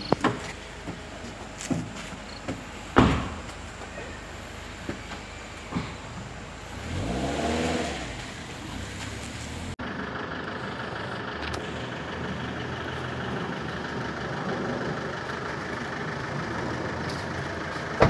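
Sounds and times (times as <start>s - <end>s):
car engine: 0.0s - 18.0s
outdoor street noise: 0.0s - 18.0s.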